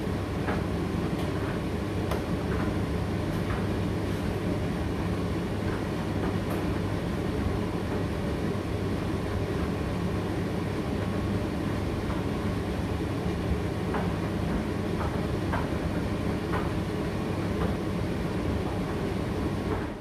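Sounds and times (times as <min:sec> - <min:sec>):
tumble dryer rumbling: 0:00.0 - 0:20.0.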